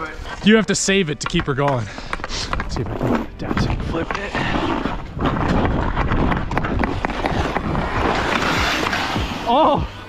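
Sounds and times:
ice skates scraping: 0.0s - 10.0s
hockey stick knocking puck: 0.8s - 9.4s
wind noise on microphone: 2.4s - 9.9s.

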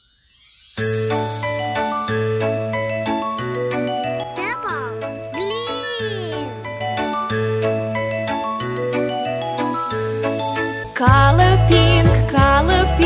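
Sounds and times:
jingling children's music: 0.0s - 13.0s.

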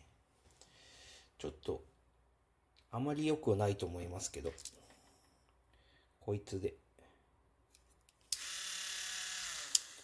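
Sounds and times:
rotary tool whining: 8.3s - 10.0s.

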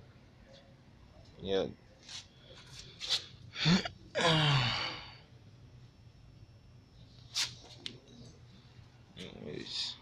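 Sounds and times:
man sighing: 3.6s - 5.2s.

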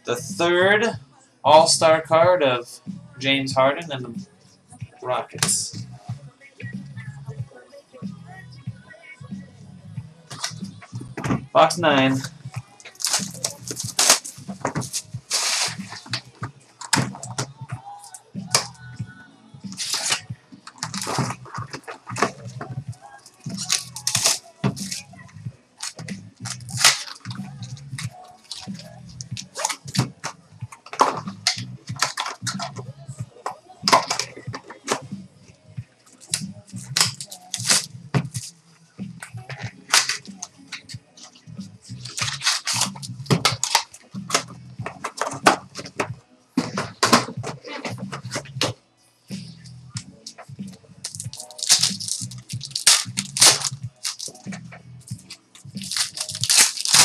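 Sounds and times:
background music: 0.0s - 57.0s
crinkling and tearing of wrappers: 12.9s - 16.1s, 19.8s - 25.1s, 25.8s - 29.9s, 36.2s - 38.5s, 42.0s - 44.0s, 51.0s - 54.5s, 55.8s - 57.0s
rustle of cards being handled: 12.9s - 16.2s, 51.1s - 54.5s, 55.3s - 57.0s.

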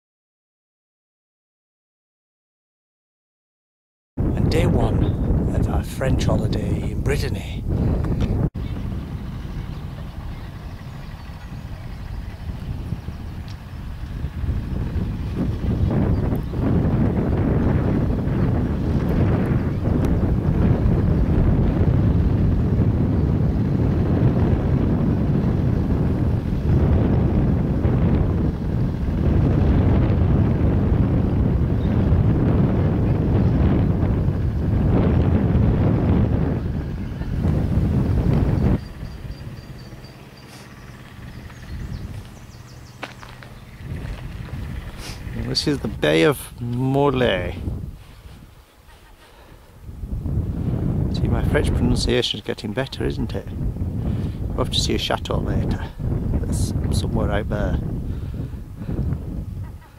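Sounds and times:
wind buffeting microphone: 4.2s - 59.9s.

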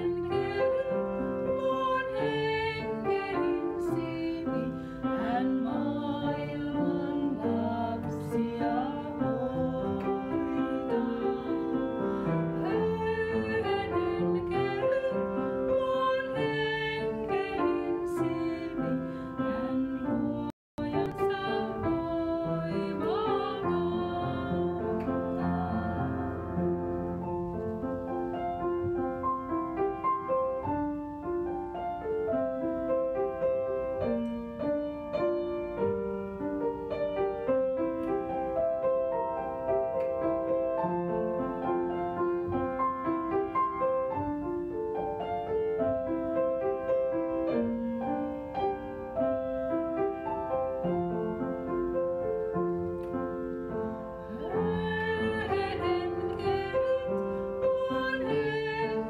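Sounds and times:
calm piano music: 0.0s - 59.0s.

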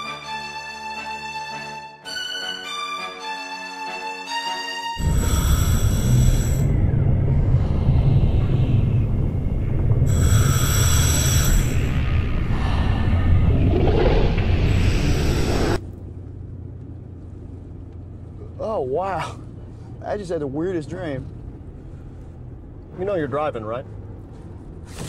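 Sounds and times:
deep rumbling drone: 5.0s - 23.1s
low hum of car cabin: 15.8s - 25.0s.

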